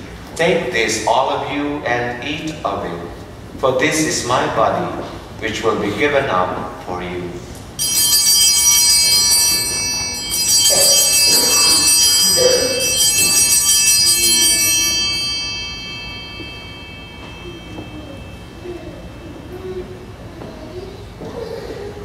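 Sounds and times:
altar bells ringing: 7.8 - 20.0.

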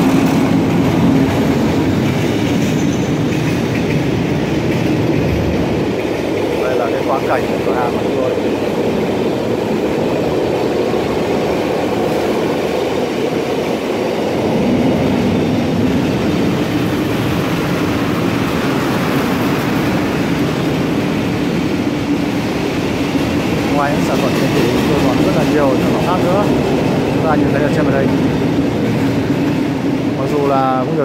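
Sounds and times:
train passing: 0.0 - 31.0.

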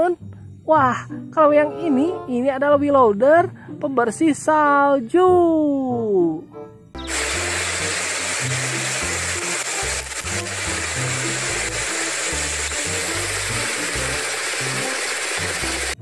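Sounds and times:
rotary snowplow blasting snow: 7.1 - 16.0.

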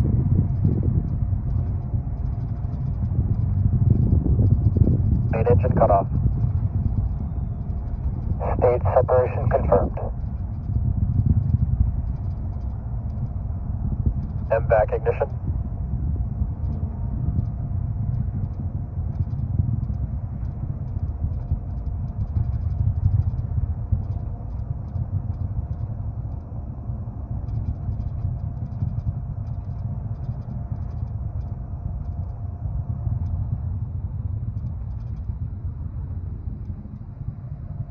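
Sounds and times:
distant rocket launch rumble: 0.0 - 37.9.

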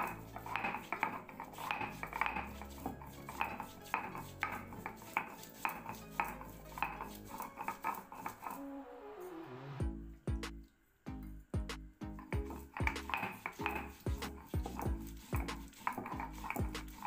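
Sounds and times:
stone grinding on stone: 0.0 - 8.7, 12.2 - 17.0.

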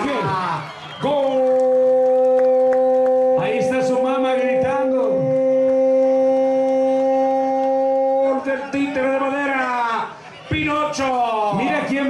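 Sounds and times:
horn long steady note: 1.3 - 9.4.

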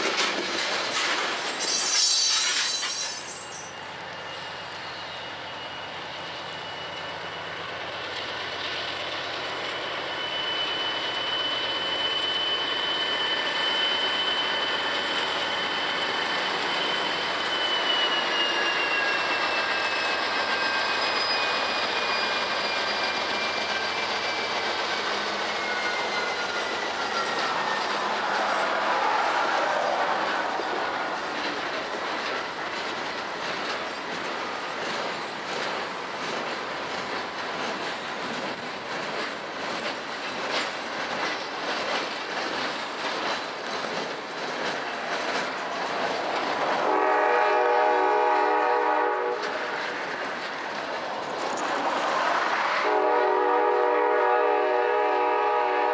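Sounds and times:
wheels clicking over rail joints: 0.0 - 1.4, 31.0 - 46.8
freight train passing: 0.0 - 55.9
high wheel squeal: 0.8 - 7.8, 9.4 - 32.7.

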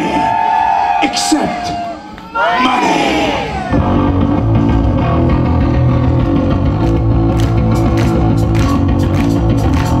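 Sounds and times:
bass guitar: 3.6 - 10.0
electric guitar: 3.8 - 10.0.

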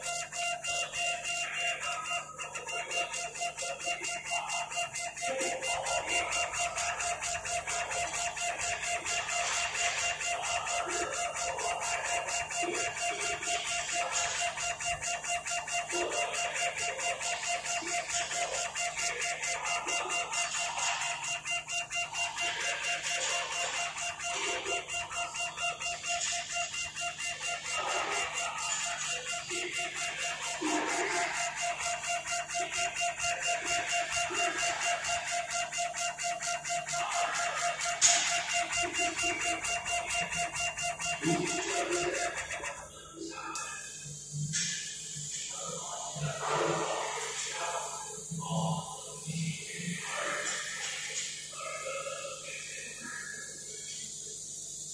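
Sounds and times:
stepper motors whining: 0.0 - 43.6.

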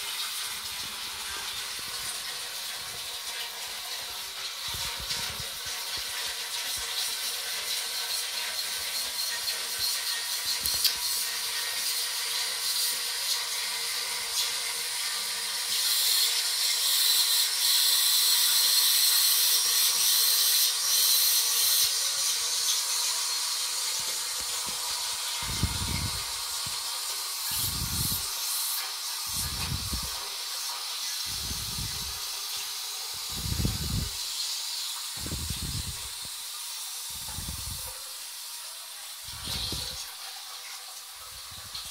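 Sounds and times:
toilet cistern filling: 0.0 - 41.9.

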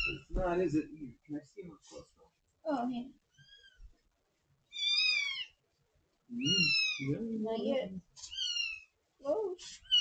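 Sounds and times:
kitten mewing: 6.3 - 7.2.

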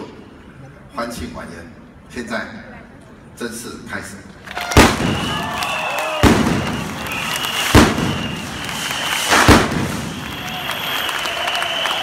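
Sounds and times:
pyrotechnics bang: 4.8 - 5.5, 6.2 - 10.7
high whistling tones: 5.0 - 12.0.

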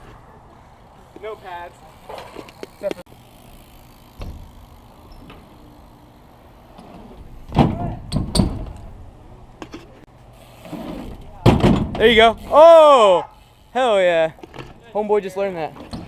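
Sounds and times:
bike tyres rolling on concrete: 0.0 - 16.0.

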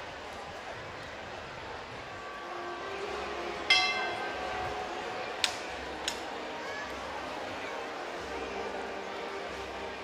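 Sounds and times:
handheld bell strike ringing: 3.7 - 4.8.

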